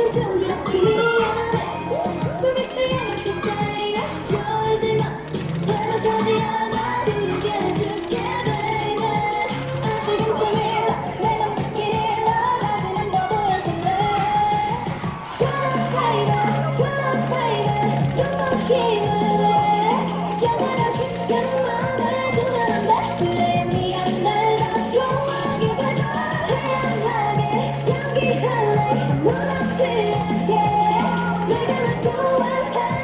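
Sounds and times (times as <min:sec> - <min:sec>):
upbeat pop dance music: 0:00.0 - 0:33.0
woman singing: 0:00.0 - 0:33.0.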